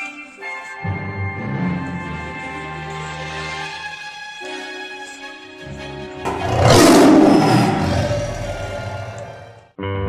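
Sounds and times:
tiger roaring: 6.3 - 9.6.

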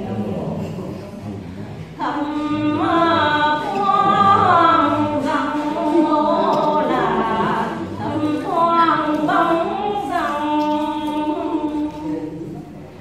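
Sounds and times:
women singing unaccompanied folk song: 2.0 - 12.3.

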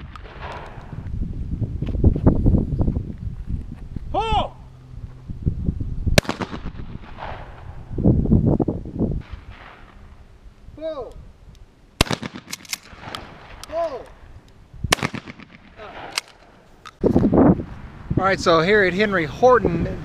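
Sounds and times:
person shouting a call: 4.1 - 4.7, 10.8 - 11.2, 13.6 - 14.2
shotgun shots: 6.2 - 7.8, 12.0 - 13.8, 14.9 - 16.5.

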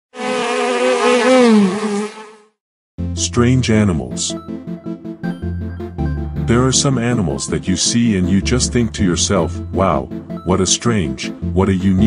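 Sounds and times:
bee buzzing: 0.1 - 2.6.

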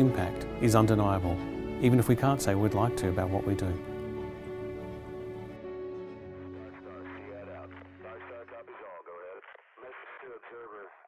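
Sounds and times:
background music: 0.0 - 9.2
voice over two-way radio: 6.4 - 11.0.

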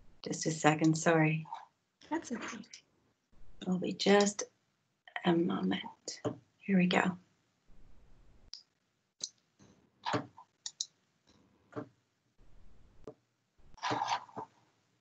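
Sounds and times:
computer mouse clicks: 10.1 - 10.9.

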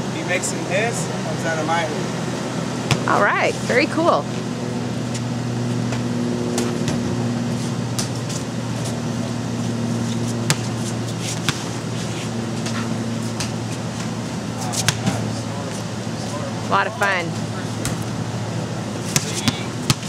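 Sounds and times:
basketballs knocking on hoops: 5.9 - 7.2, 11.4 - 11.7, 12.6 - 14.2, 14.8 - 15.3, 17.8 - 18.1, 19.1 - 20.0.

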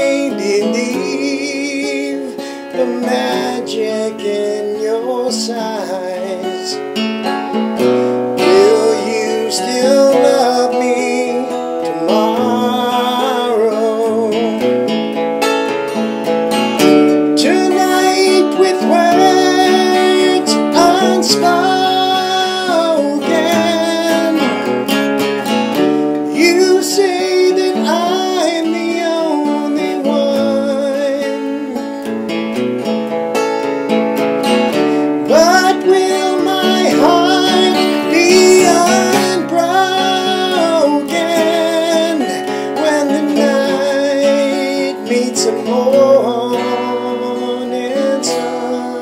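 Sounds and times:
man singing: 0.0 - 7.0, 7.8 - 15.2, 16.7 - 32.1, 34.6 - 49.0
acoustic guitar slow tempo: 0.0 - 49.0.

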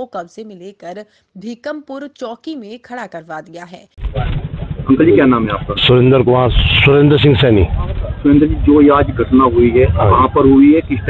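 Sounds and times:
low outdoor rumble: 3.9 - 11.0
man speaking into a microphone: 4.9 - 11.0.

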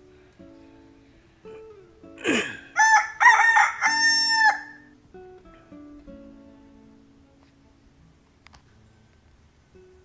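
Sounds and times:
soft plucked-string music: 0.0 - 10.0
rooster crowing: 2.8 - 4.9.

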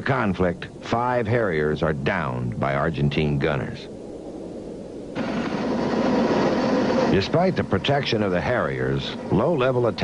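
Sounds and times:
jet engine rushing: 0.0 - 10.0.

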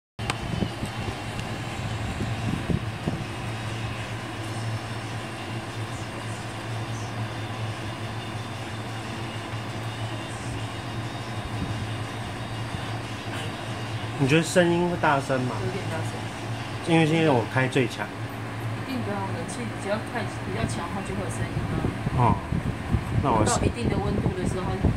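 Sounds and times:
air conditioner running: 0.2 - 24.9.

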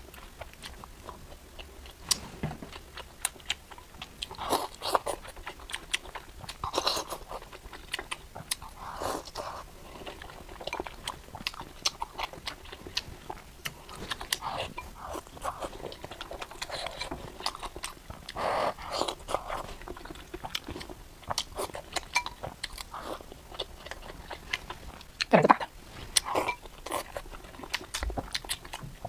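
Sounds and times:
wet chewing and lip smacking: 0.0 - 29.0.

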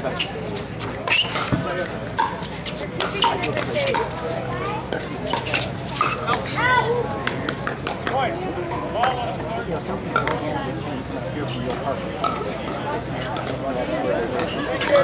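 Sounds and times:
people chattering: 0.0 - 15.0.

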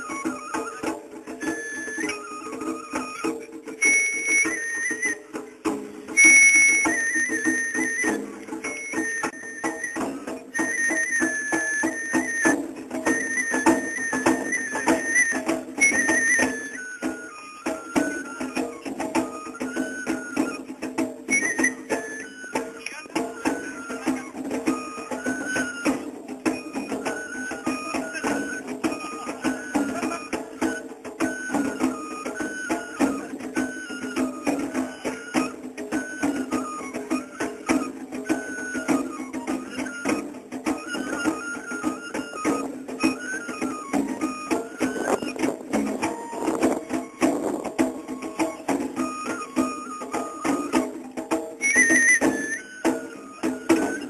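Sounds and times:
bamboo flute melody: 0.0 - 54.0
steady drumming: 0.0 - 54.0.

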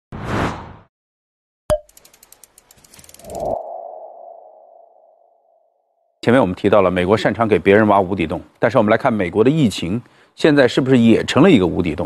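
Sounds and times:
rapid fine ticks: 1.9 - 3.5
whoosh: 3.1 - 5.4
mid-pitched ringing tone: 3.2 - 5.7.

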